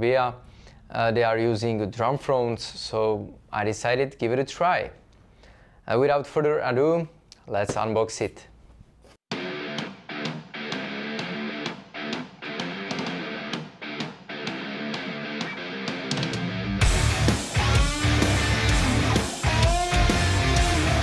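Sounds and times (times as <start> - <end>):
guitar background music: 9.3 - 21.0.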